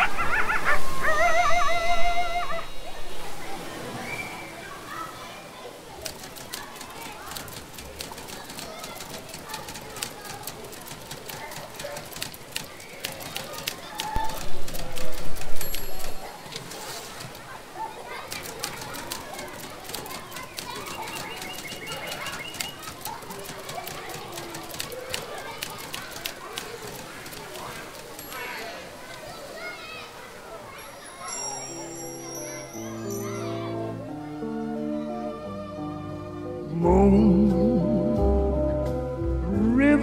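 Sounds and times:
sharp clicks: 6.0s - 17.4s, 18.3s - 28.4s
indistinct voices: 36.6s - 38.8s.

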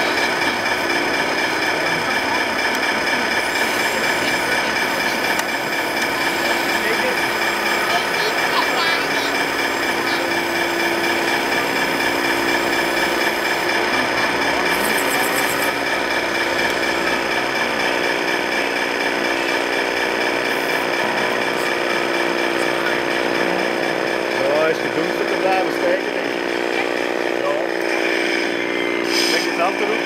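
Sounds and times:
electric motors whining: 0.0s - 30.0s.

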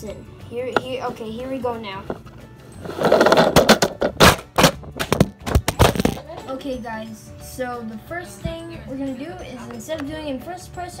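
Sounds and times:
plastic toy car falling down stairs: 3.0s - 6.2s.

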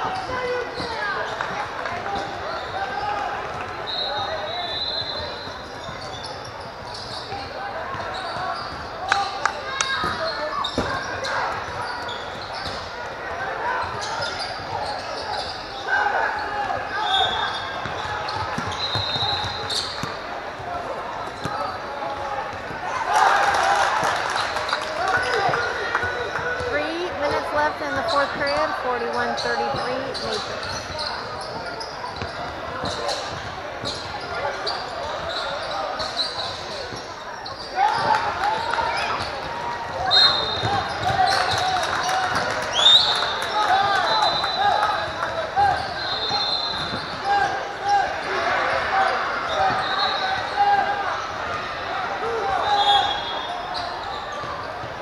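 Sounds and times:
indistinct voices: 26.7s - 30.5s.

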